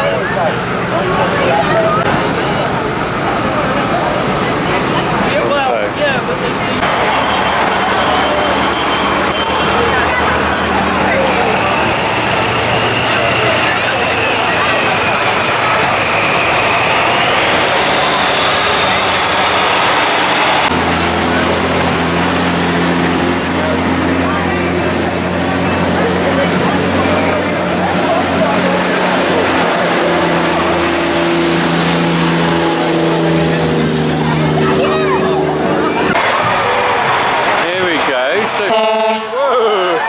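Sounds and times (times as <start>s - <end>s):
crowd chatter: 0.0s - 40.0s
vehicle engines droning: 0.0s - 40.0s.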